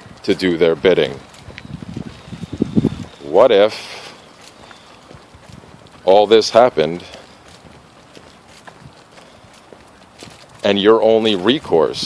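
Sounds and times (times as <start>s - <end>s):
faint footsteps: 0.0s - 12.0s
outdoor background hiss: 0.0s - 12.0s.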